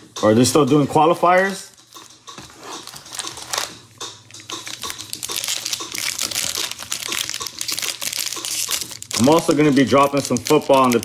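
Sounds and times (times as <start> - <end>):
foil wrapper crinkling: 1.8 - 11.0.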